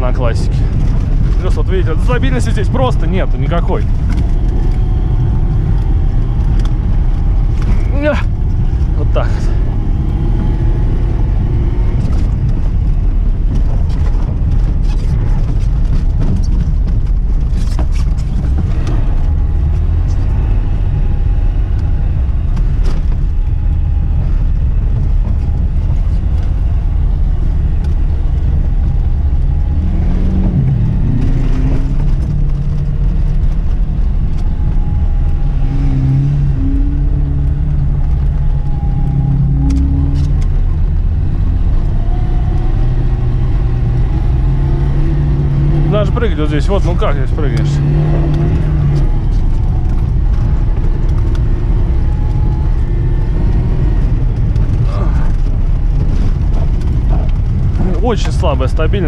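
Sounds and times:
car engine revving: 0.0 - 59.0
car knocks and thuds over bumps: 0.0 - 59.0.

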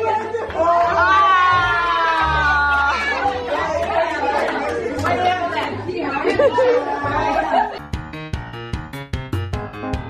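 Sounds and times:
children talking and calling out: 1.6 - 7.8.

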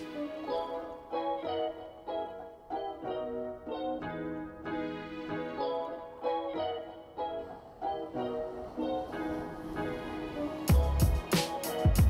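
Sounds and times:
soft keyboard melody: 0.0 - 12.0
electronic drum beat: 10.7 - 12.0.

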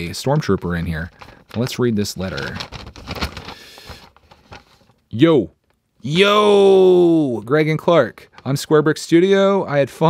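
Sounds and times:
paper rustling and crackling: 0.4 - 5.0.

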